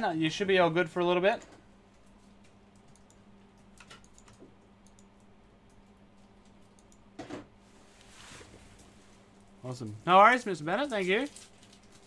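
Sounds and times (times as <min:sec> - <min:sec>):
low electrical hum: 0:00.0 - 0:12.0
typing on a computer keyboard: 0:02.7 - 0:07.1.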